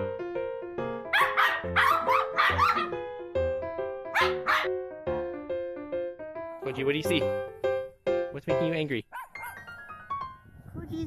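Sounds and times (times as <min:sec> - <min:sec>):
cheerful background music: 0:00.0 - 0:10.6
small dog barking: 0:01.1 - 0:02.9, 0:04.1 - 0:04.7, 0:09.1 - 0:09.7.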